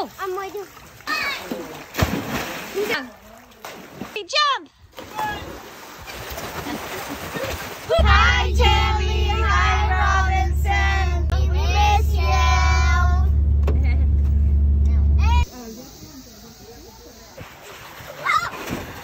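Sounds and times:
scattered voices: 0:08.0 - 0:13.3
children singing: 0:08.0 - 0:13.4
van rumble: 0:08.0 - 0:15.5.

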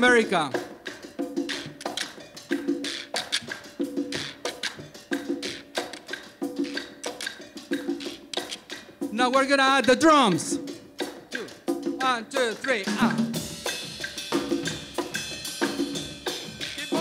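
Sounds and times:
congas and timbales: 0:00.0 - 0:17.0.

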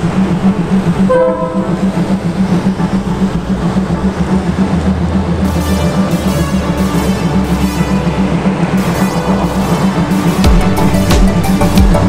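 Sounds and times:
train pulsing rumble: 0:00.0 - 0:12.0
train horn blast: 0:01.0 - 0:02.2, 0:05.2 - 0:10.4.

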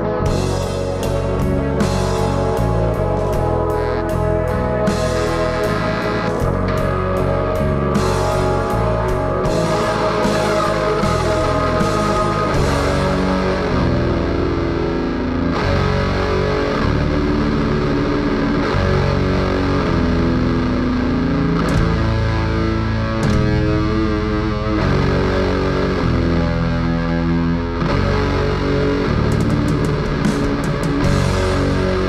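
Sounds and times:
distorted electric guitars: 0:00.0 - 0:32.0.

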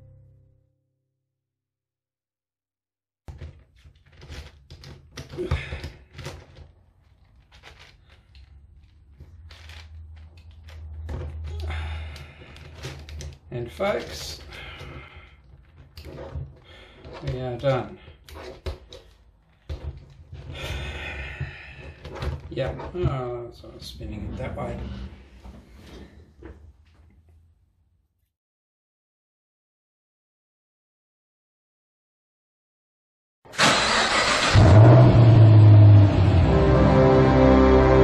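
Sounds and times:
puzzle cube layers turning: 0:03.7 - 0:19.6
loud deep drone: 0:34.6 - 0:38.0.

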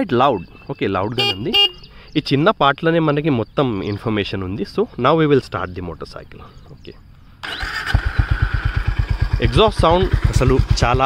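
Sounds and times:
starter motor whir: 0:07.4 - 0:09.5
motorcycle engine idling: 0:07.4 - 0:11.0.

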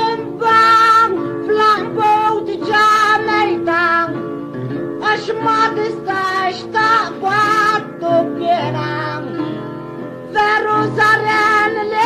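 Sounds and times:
guitar accompaniment: 0:00.0 - 0:12.0
person singing folk song: 0:00.0 - 0:12.0.

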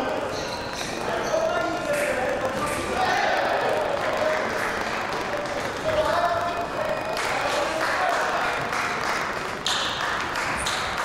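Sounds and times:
shoes squeaking and stepping: 0:00.0 - 0:03.0
voices in large hall: 0:00.0 - 0:11.0.

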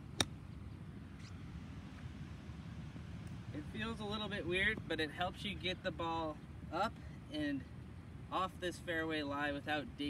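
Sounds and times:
low outdoor background: 0:00.0 - 0:10.0
golf club striking ball: 0:00.1 - 0:00.4.

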